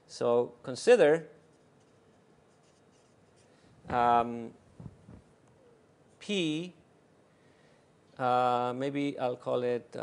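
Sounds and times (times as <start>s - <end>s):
writing scratching on a board: 1.4s - 3.5s.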